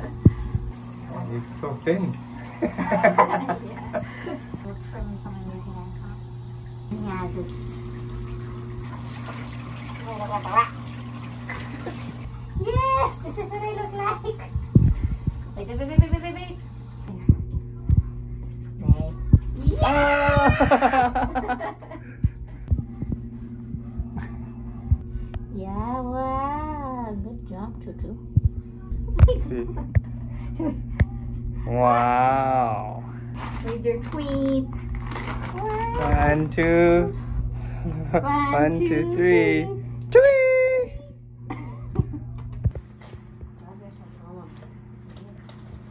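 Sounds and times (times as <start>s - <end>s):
steady low hum: 0.0s - 45.9s
low thumps: 0.1s - 0.8s, 12.4s - 13.4s, 14.2s - 16.5s, 22.1s - 31.6s.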